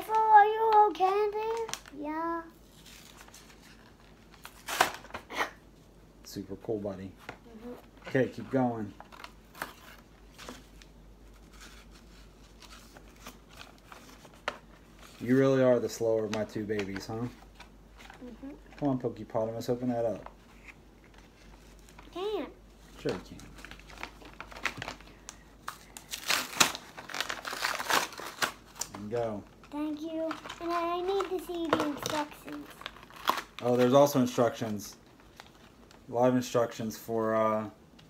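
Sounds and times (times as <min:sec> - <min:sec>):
blister pack crinkling: 0:22.9 - 0:36.1
plastic packaging clicks: 0:29.6 - 0:33.8.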